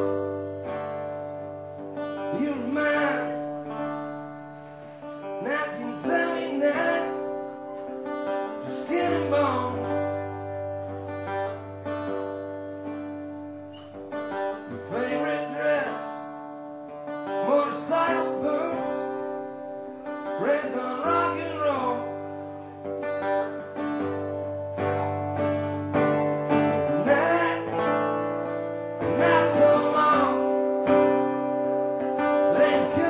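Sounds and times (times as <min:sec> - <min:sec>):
acoustic guitar strumming: 0:00.0 - 0:33.0.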